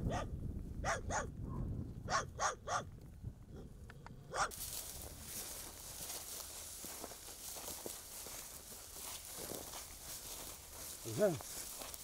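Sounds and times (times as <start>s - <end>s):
dog barking: 0.1s - 1.3s, 2.1s - 2.9s, 4.3s - 4.6s.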